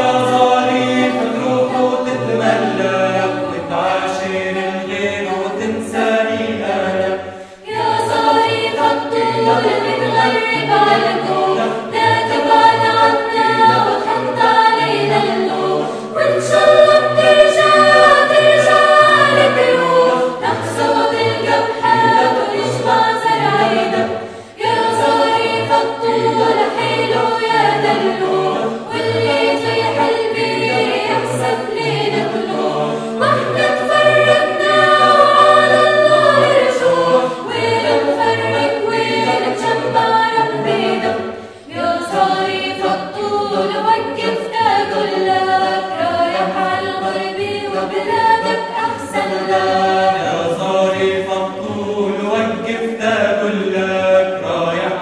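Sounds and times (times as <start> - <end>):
mixed choir singing a cappella: 0.0 - 55.0.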